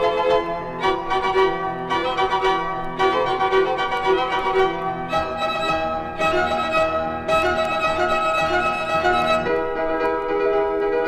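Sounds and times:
strings and piano classical music: 0.0s - 11.0s.

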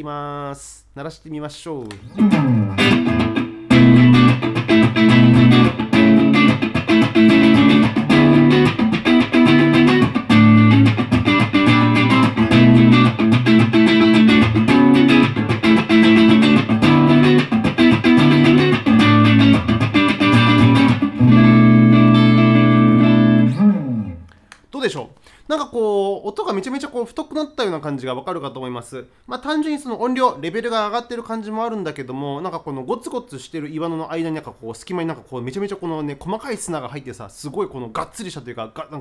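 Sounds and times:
electric guitar chord riff: 2.1s - 24.3s.

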